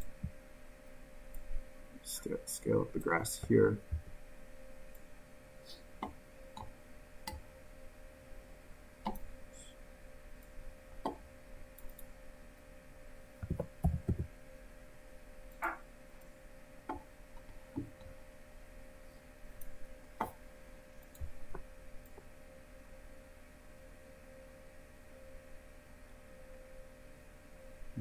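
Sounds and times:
faint steady hum: 0:00.0 - 0:28.0
computer mouse clicks: 0:09.0 - 0:09.3, 0:11.8 - 0:12.1.

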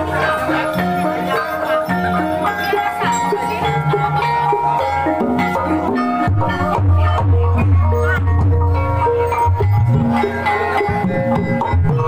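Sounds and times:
gamelan music: 0:00.0 - 0:12.0.

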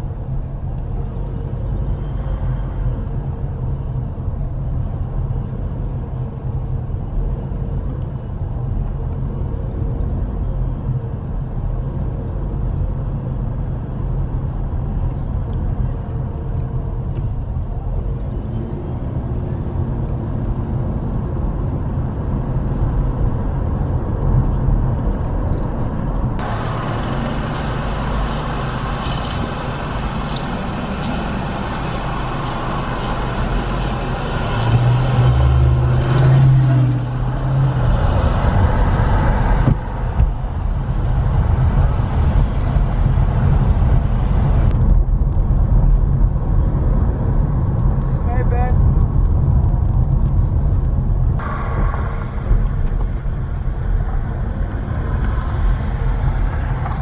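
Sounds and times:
low drone: 0:00.0 - 0:57.0
road and engine rumble in car: 0:00.0 - 0:57.0
passing traffic hiss: 0:26.4 - 0:35.6.

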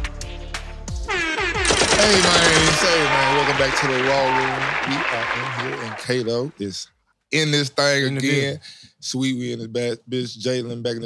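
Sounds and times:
crowd applause: 0:01.8 - 0:06.7.

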